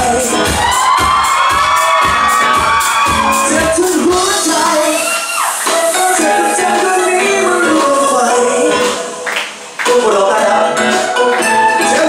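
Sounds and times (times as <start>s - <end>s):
drum beat: 0.0s - 9.0s
live band music: 0.0s - 12.0s
crowd shouting along: 0.6s - 3.7s.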